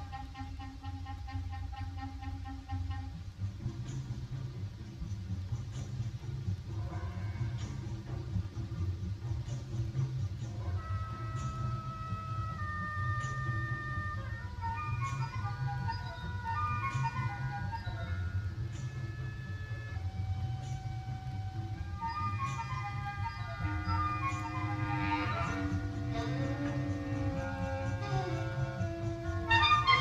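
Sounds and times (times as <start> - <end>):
low tape hum: 0.0 - 30.0
concert band playing: 21.8 - 30.0.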